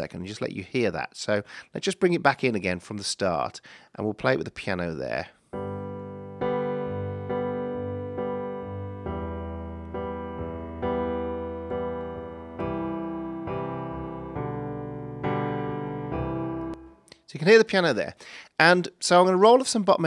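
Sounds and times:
slow piano chords: 5.6 - 17.1.

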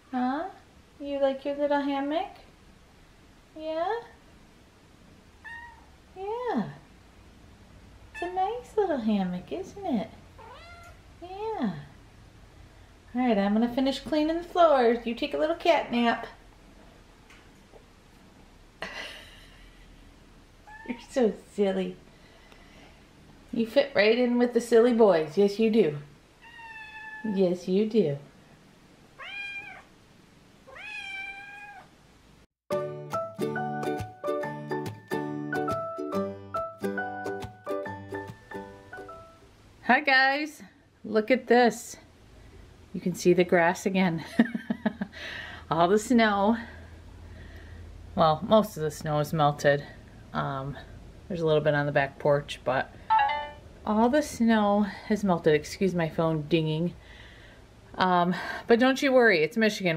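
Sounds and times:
cat meowing: 5.4 - 5.9, 10.4 - 11.0, 20.7 - 21.0, 26.4 - 27.3, 29.2 - 29.9, 30.7 - 31.9.

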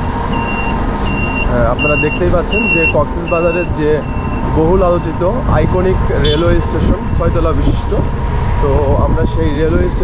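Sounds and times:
vehicle engine low rumble: 0.0 - 10.0
voice: 1.5 - 10.0.

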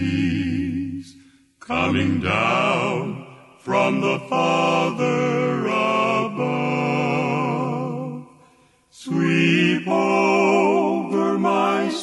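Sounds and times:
male vocal group singing a hymn: 0.0 - 12.0.

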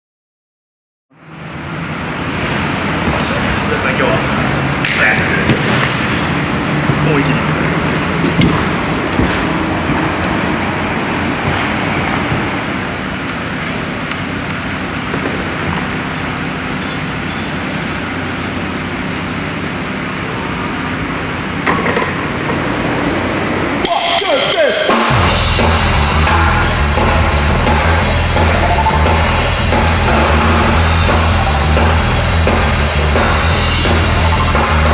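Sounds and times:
steady rushing noise: 1.4 - 34.9
indistinct voices: 2.6 - 13.0, 22.5 - 34.9.

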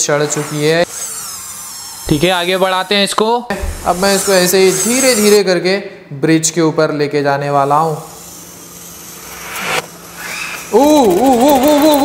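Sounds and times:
toy car motor and gears whirring: 0.0 - 3.1, 3.9 - 5.4, 7.6 - 12.0.

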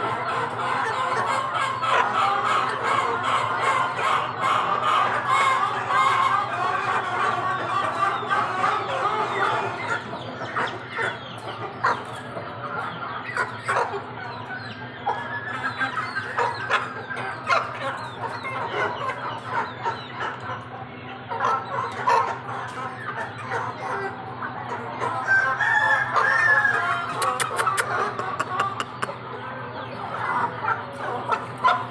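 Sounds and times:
chickens clucking and calling: 0.0 - 31.9
rooster crowing: 25.2 - 27.2.

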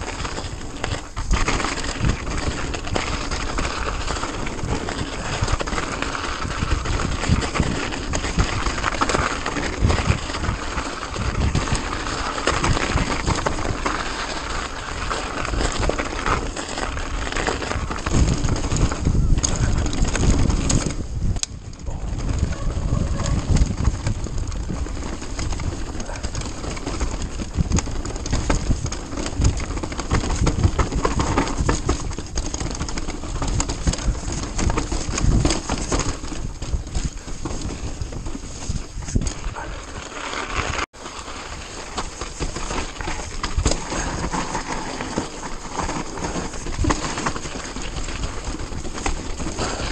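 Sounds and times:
bike chain and frame rattling: 0.0 - 49.9
tyres on dirt and snow: 0.0 - 49.9
wind rushing over microphone: 0.0 - 49.9.

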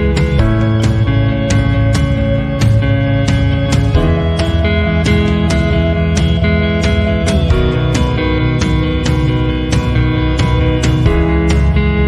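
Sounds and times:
instrumental background music: 0.0 - 12.0.

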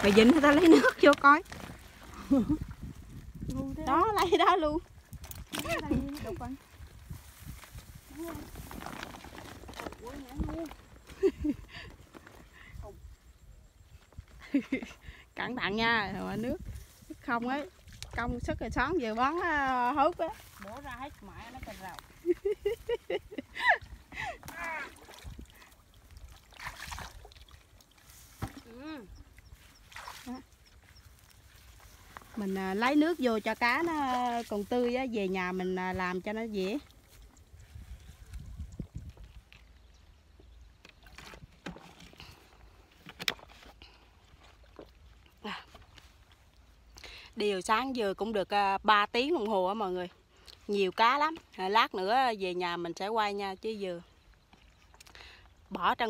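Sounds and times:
bucket filling with water: 0.0 - 4.8, 7.8 - 11.1, 24.1 - 28.7
water sloshing: 0.0 - 12.9, 15.8 - 39.9
woman laughing: 0.5 - 1.0, 11.1 - 11.9, 14.4 - 15.1, 22.2 - 24.9.

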